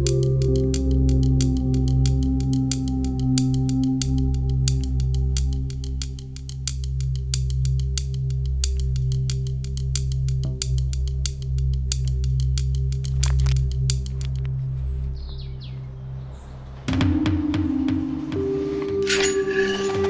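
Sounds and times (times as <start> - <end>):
low musical drone: 0.0 - 20.0.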